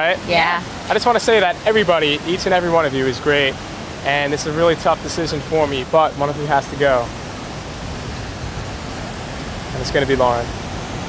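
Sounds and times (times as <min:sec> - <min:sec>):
ocean surf rushing: 0:00.0 - 0:11.0.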